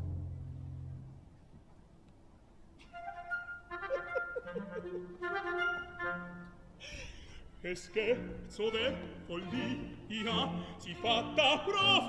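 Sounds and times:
woodwind phrase: 2.8s - 6.6s.

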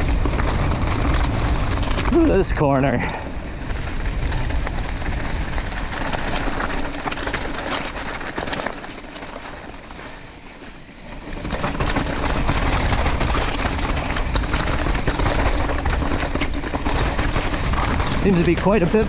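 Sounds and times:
bike rattling: 0.0s - 19.0s
bike tyres crunching on gravel: 0.0s - 19.0s.

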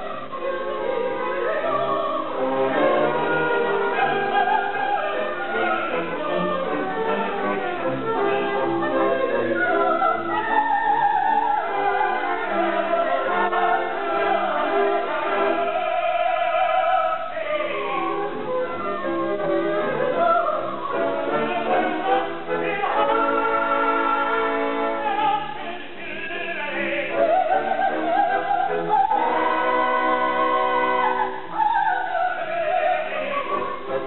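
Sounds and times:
operatic high voice singing: 0.0s - 18.5s, 19.8s - 34.0s
orchestra: 0.0s - 34.0s.

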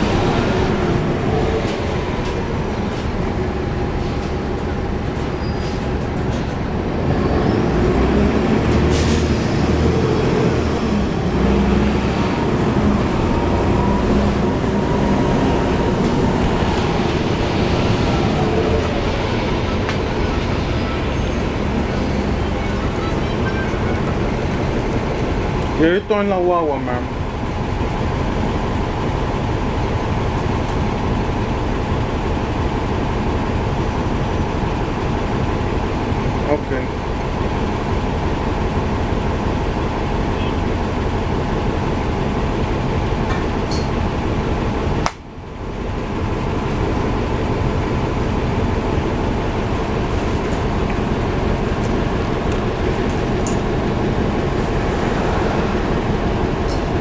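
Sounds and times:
bus diesel engine running: 0.0s - 57.0s.

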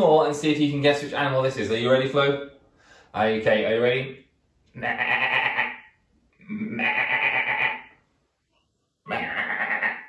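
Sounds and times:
sheep bleating: 4.8s - 5.8s, 6.8s - 7.9s, 9.2s - 10.0s.

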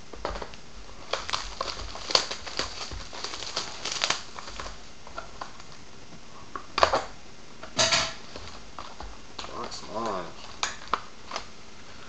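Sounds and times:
shrink wrap crinkling and tearing: 0.2s - 5.8s, 8.2s - 11.5s.

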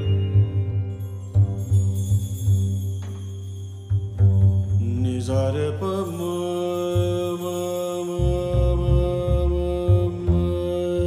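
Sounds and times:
man singing classical vocals: 0.0s - 1.2s, 4.7s - 11.0s
low accompanying notes: 0.0s - 11.0s.

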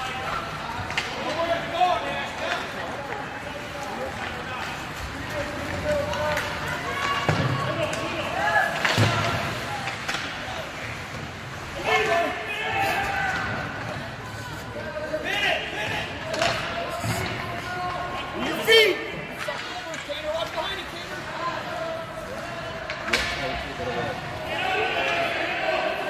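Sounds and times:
voices shouting in echoing rink: 0.0s - 26.0s.

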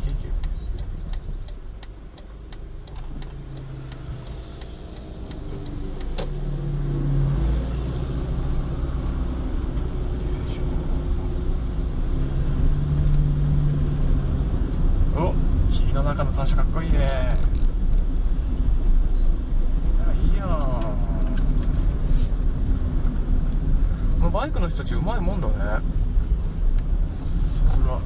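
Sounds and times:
car engine and road noise: 0.0s - 28.0s
light ticks: 0.1s - 6.3s.

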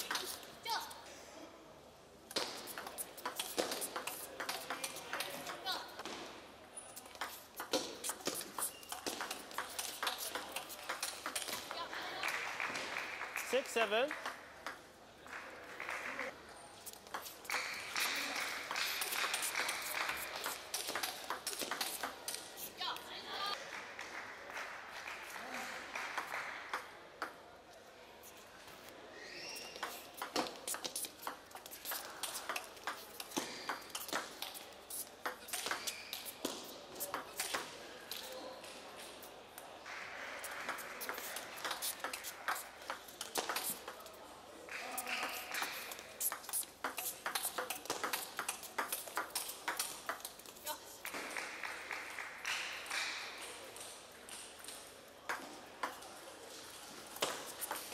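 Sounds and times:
ping pong ball hitting paddles: 2.3s - 5.6s, 7.1s - 11.8s, 17.1s - 22.4s, 29.6s - 37.8s, 40.4s - 44.0s, 44.8s - 50.4s.

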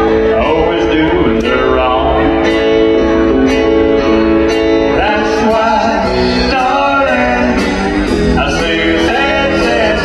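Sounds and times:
country band playing: 0.0s - 10.0s.

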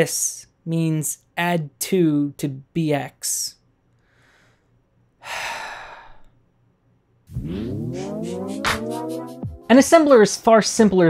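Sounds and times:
man sighing: 5.2s - 6.3s.

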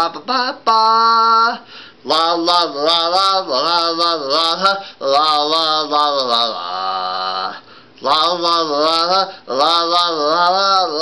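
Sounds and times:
person singing la la la: 0.0s - 11.0s.

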